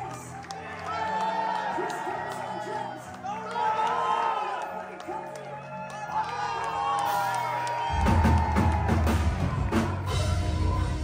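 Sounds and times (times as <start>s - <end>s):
drums: 6.9s - 11.0s
bass guitar: 7.9s - 11.0s.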